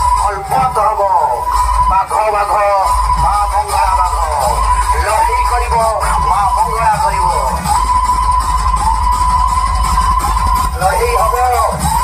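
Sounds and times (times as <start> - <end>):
loud dance music: 0.0 - 12.0.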